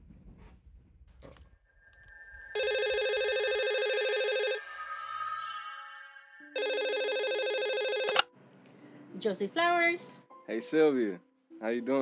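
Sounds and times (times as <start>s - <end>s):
electronic telephone ringing: 2.6s - 4.7s, 6.6s - 8.3s.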